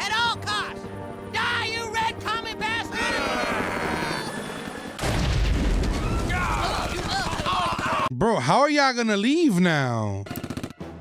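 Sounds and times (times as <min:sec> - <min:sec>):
helicopter: 0:00.0 - 0:05.0.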